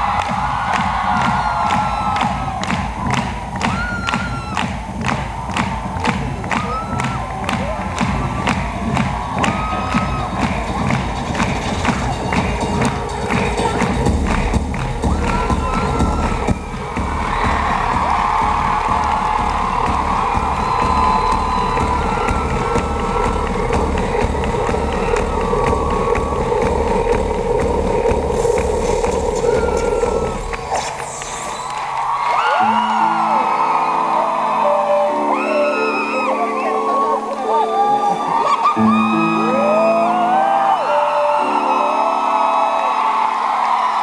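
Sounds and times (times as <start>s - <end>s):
pulsing bass beat: 0.0s - 31.8s
crowd cheering: 0.0s - 44.0s.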